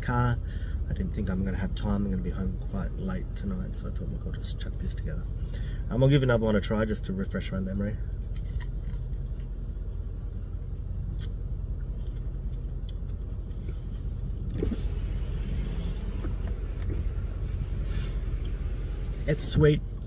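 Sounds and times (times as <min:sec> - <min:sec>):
low rumble in car cabin: 0:00.0 - 0:20.0.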